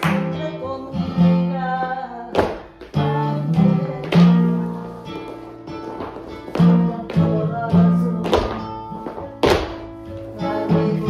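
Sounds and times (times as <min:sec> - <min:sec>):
flamenco guitar: 0:00.0 - 0:11.0.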